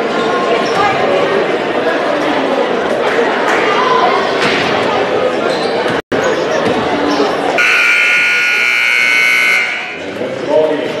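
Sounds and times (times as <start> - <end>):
court noise: 0.0 - 11.0
crowd voices: 0.0 - 11.0
scoreboard horn blast: 7.6 - 10.0.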